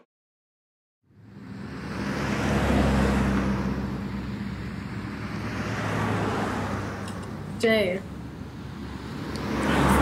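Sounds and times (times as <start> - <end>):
vehicle engine hum: 1.0 - 10.0.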